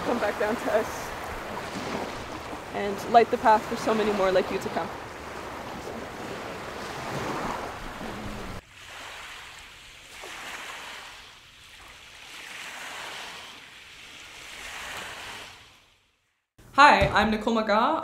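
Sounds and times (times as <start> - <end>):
waves washing onto pebbles: 0.0 - 16.0.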